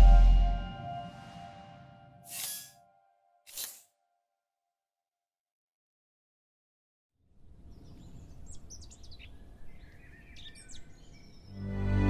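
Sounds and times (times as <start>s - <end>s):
music: 0.0s - 2.2s, 11.5s - 12.0s
birds chirping: 7.6s - 12.0s.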